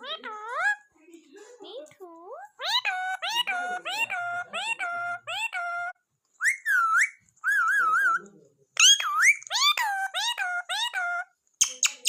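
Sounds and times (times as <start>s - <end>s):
parakeet whistling: 2.6s - 8.2s, 8.8s - 12.0s.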